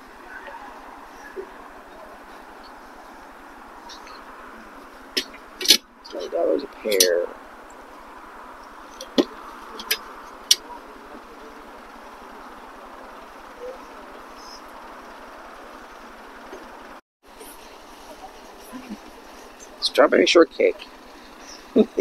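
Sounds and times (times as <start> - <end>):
outdoor background hum: 0.0 - 22.0.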